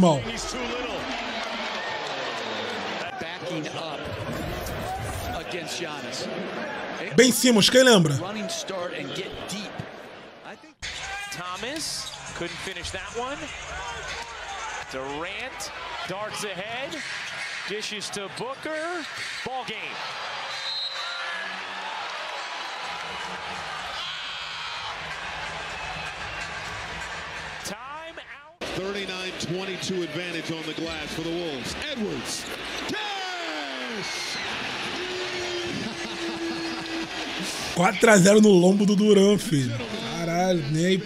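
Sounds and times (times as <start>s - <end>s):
commentator talking: 0.0s - 0.4s, 7.1s - 8.3s, 37.7s - 41.0s
arena crowd: 0.0s - 41.0s.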